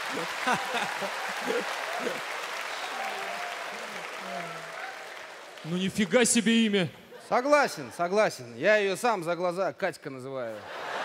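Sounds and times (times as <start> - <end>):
audience applauding: 0.0 - 6.7.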